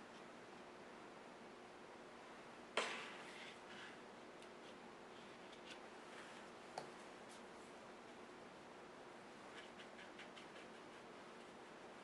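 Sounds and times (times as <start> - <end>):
paintbrush dabbing on paper: 9.5 - 12.0.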